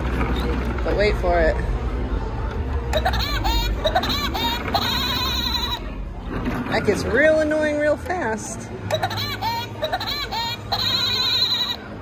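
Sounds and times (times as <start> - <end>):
recorded cartoon laugh: 2.9 - 5.8, 8.9 - 11.8.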